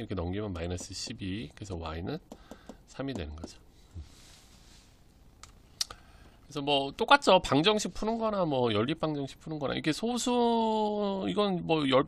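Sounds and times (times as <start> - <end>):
faint hiss: 2.4 - 8.2.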